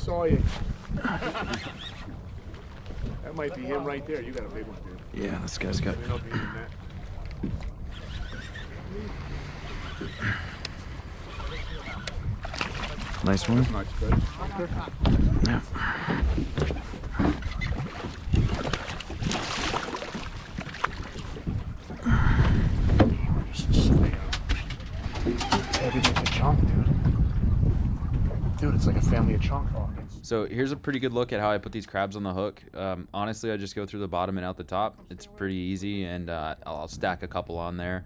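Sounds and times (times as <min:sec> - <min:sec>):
low rumble of wind: 0:00.0 - 0:38.0
water around a boat: 0:00.0 - 0:38.0.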